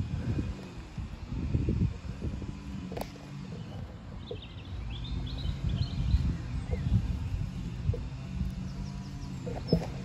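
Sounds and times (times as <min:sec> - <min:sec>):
steady low rumble: 0:00.0 - 0:10.0
small birds chirping: 0:00.1 - 0:10.0.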